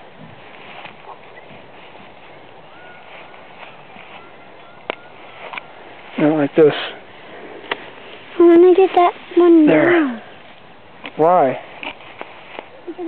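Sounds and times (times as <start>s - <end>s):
faint high chirps: 2.2s - 5.8s.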